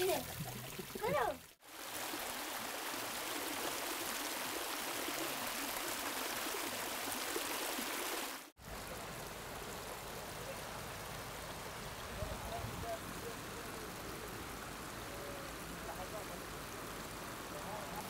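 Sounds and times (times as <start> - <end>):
hot spring water boiling: 0.0 - 18.0.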